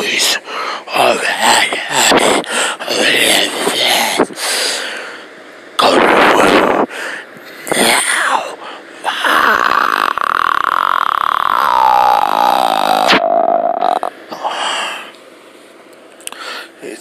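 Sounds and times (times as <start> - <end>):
person blowing into microphone: 9.1 - 14.1
person humming falling note: 9.2 - 14.1.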